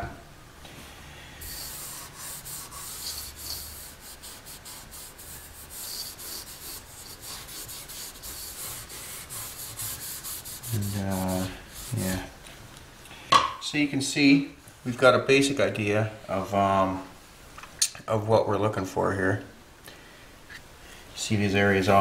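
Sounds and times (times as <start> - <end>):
rag rubbing on wood: 1.4 - 12.4.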